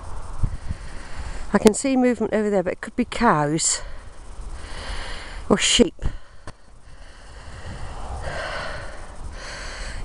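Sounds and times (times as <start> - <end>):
low rumble of wind: 0.0 - 10.0
person breathing close to microphone: 0.4 - 1.5, 3.8 - 10.0.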